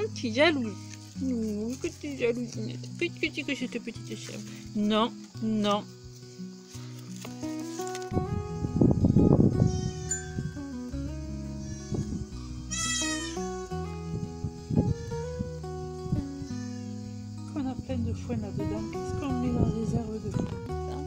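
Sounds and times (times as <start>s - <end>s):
background music with held notes: 0.0s - 21.0s
goat bleating: 12.7s - 13.5s.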